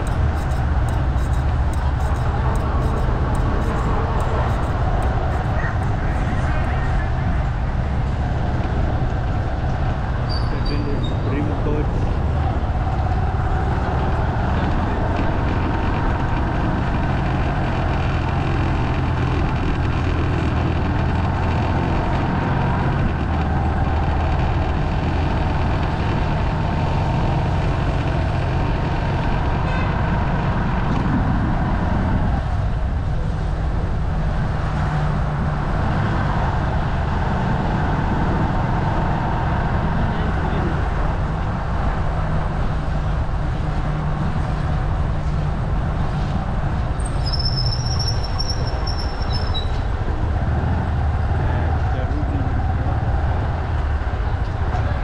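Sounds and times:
motorbike engine: 0.0s - 55.0s
road noise: 0.0s - 55.0s
thin high whistle-like tone: 47.2s - 49.8s.

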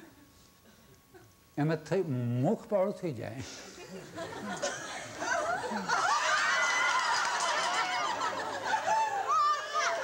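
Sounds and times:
people laughing: 3.6s - 10.0s.

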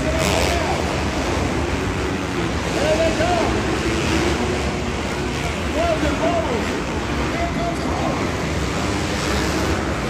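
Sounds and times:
dirt bike engines racing: 0.0s - 10.0s.

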